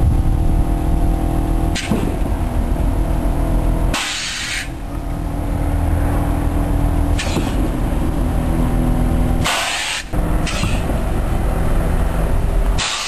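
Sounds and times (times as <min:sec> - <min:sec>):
car engine running: 0:00.0 - 0:13.0
air suspension hissing: 0:01.7 - 0:02.4, 0:03.9 - 0:04.9, 0:07.0 - 0:08.0, 0:09.3 - 0:11.3, 0:12.7 - 0:13.0.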